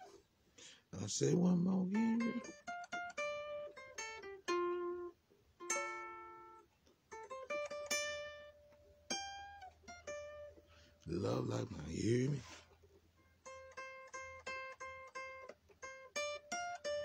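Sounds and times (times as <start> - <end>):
blues guitar picking: 1.3 - 12.3, 13.2 - 17.0.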